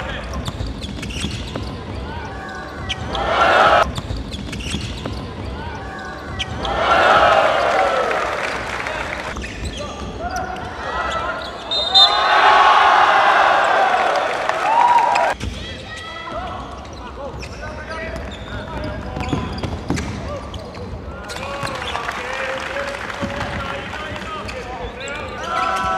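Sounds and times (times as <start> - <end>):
sneakers squeaking: 0.0 - 8.4, 9.2 - 12.6, 15.2 - 22.2, 23.2 - 25.9
basketball bouncing on wooden floor: 0.3 - 2.1, 3.8 - 5.6, 18.2 - 20.2
players calling out: 1.1 - 3.9.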